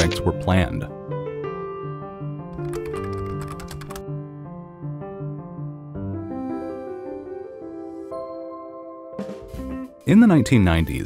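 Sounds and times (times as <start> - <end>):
sustained piano-like music: 0.0 - 11.0
computer keyboard typing clicks: 2.6 - 4.0.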